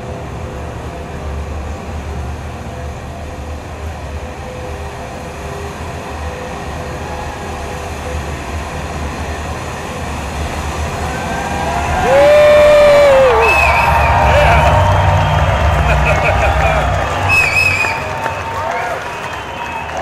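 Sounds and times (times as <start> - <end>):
deep rumble: 12.2 - 18.5.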